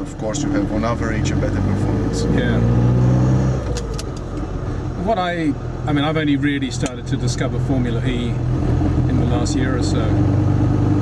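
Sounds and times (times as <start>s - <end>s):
car engine running: 0.0s - 11.0s.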